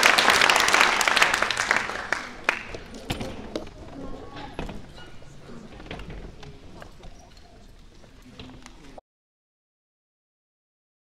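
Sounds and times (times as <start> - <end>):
faint indistinct voices: 0.6 - 9.0.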